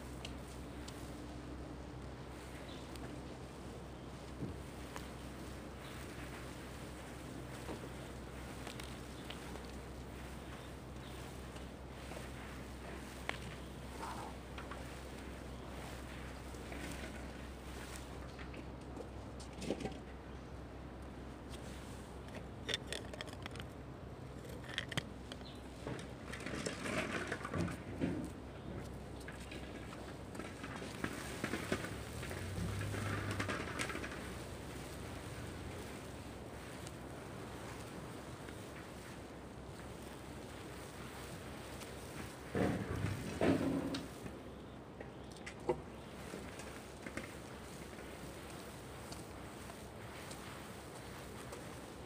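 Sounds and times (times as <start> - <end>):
low steady hum: 0.0 - 52.0
handling clicks and knocks: 21.6 - 34.5.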